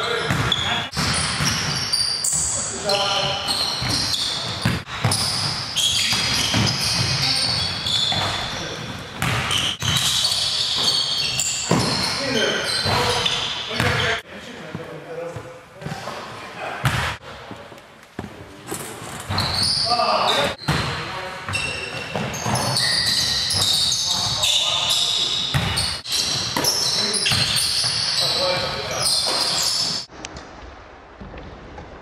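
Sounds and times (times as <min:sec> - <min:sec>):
sneakers squeaking on hardwood: 0:00.0 - 0:14.2, 0:16.8 - 0:30.1
players' voices echoing: 0:00.0 - 0:30.0
basketball bouncing: 0:00.3 - 0:01.8, 0:03.8 - 0:10.2, 0:16.8 - 0:17.2, 0:25.5 - 0:28.0.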